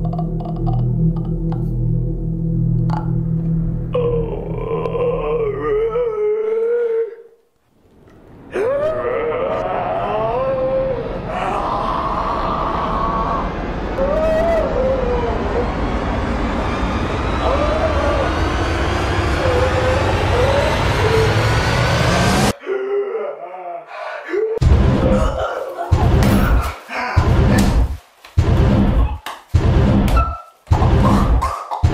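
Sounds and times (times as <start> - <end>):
low drone: 0.0 - 7.1, 7.9 - 22.6
wavering howl-like cry: 3.9 - 7.3, 8.4 - 26.9.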